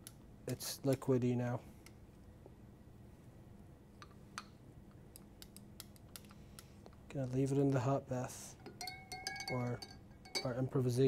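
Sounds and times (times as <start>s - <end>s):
glass rod tapping glass beaker: 8.6s - 10.7s.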